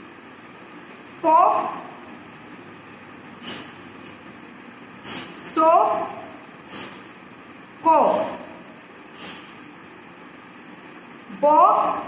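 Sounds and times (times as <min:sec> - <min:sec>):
steady background hiss: 0:00.0 - 0:12.0
short breathy hiss: 0:03.4 - 0:03.8, 0:05.0 - 0:05.5, 0:06.6 - 0:07.1, 0:09.1 - 0:09.6.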